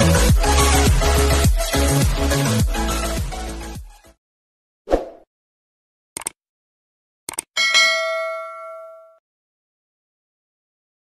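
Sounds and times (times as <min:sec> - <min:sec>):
bell chime ding: 0:07.6 - 0:09.2.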